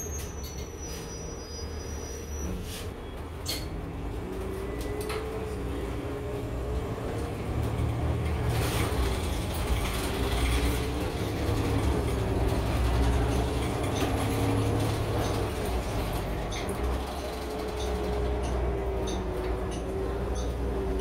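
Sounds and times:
bus engine rumble and whine: 0:00.0 - 0:21.0.

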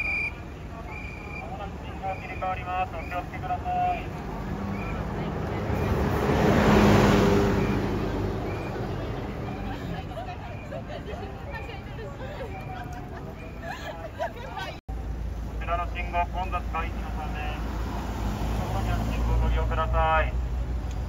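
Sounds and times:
bus driving past: 0:00.0 - 0:21.0.

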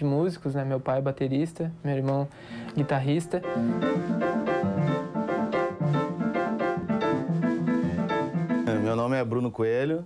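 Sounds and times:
jazz piano on keyboard: 0:02.8 - 0:10.0.

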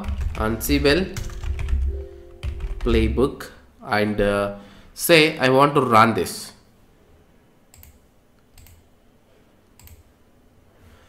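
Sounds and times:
faint computer clicks: 0:09.7 - 0:10.1.

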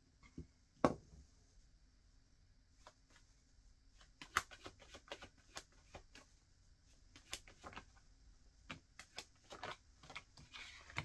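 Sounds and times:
cards flicking and tapping: 0:04.0 - 0:06.3, 0:07.1 - 0:08.0, 0:08.7 - 0:11.0
cards rustling: 0:04.0 - 0:06.3, 0:07.0 - 0:08.0, 0:08.7 - 0:11.0.

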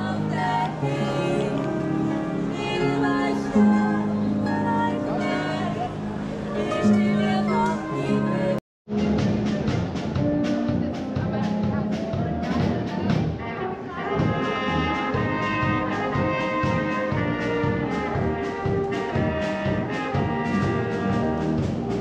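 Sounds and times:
brass band playing: 0:00.0 - 0:22.0.

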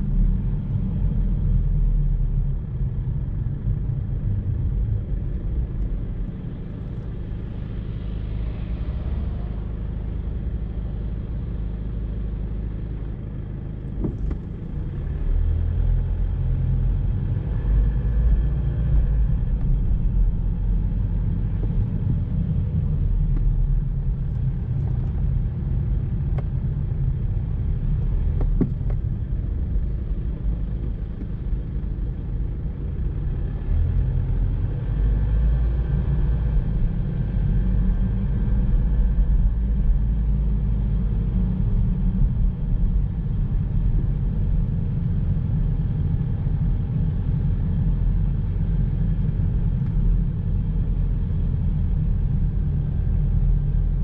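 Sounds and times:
car driving engine and road noise: 0:00.0 - 0:54.0.

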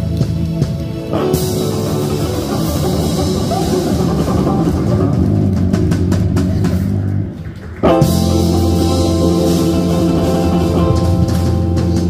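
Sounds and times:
live band playing smooth jazz: 0:00.0 - 0:07.0, 0:07.8 - 0:12.0.

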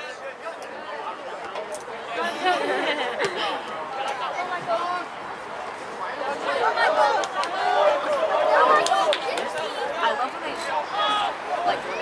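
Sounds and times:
people shouting and talking: 0:00.0 - 0:12.0.

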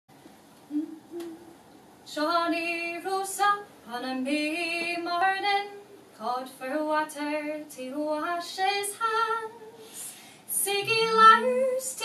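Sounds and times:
woman humming: 0:00.7 - 0:01.6.

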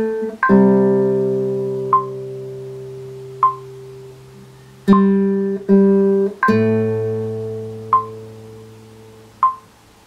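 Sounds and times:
classical guitar chord ringing: 0:00.0 - 0:09.7.

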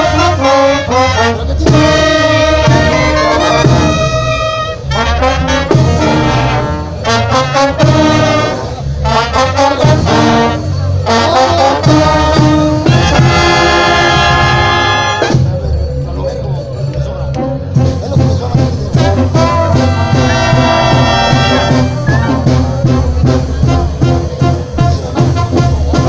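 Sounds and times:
brass band playing: 0:00.0 - 0:15.9, 0:17.3 - 0:26.0
tuba bass line: 0:00.0 - 0:15.9, 0:17.2 - 0:26.0.

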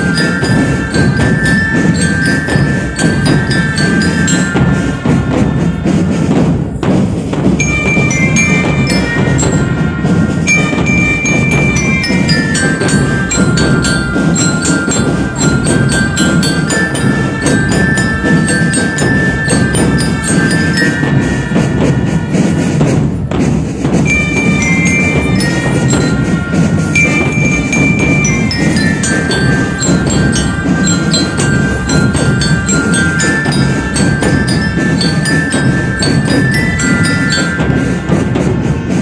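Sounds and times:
ringing bell-lyra notes: 0:00.0 - 0:06.2, 0:07.6 - 0:22.7, 0:24.0 - 0:39.0
bass drums beating: 0:00.0 - 0:39.0
marching drum band: 0:00.0 - 0:39.0.

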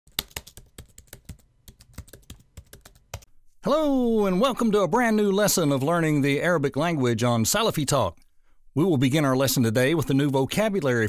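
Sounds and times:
computer keyboard typing: 0:00.1 - 0:03.3.

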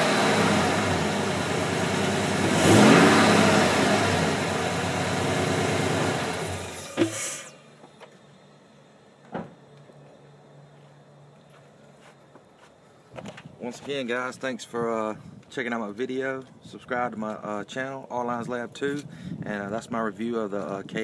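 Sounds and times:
engine running and revving: 0:00.0 - 0:07.2.

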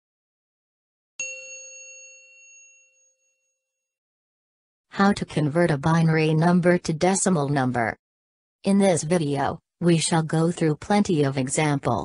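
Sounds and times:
bright bell-like ding: 0:01.2 - 0:03.6.

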